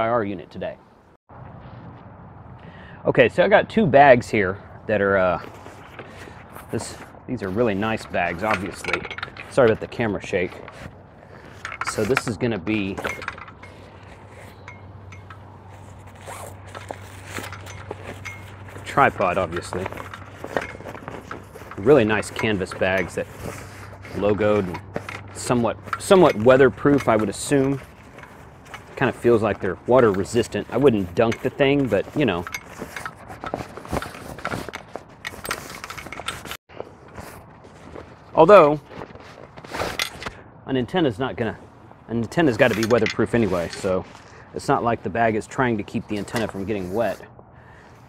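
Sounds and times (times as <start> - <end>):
metal tripod clicks and scrapes: 5.4 - 37.4, 38.9 - 40.4, 42.2 - 44.3, 45.8 - 47.2
zipper and canvas bag handled: 15.6 - 40.3.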